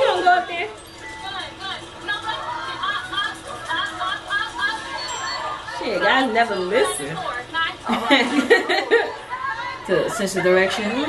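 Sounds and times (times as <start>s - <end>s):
people chattering on tv: 0.0s - 11.0s.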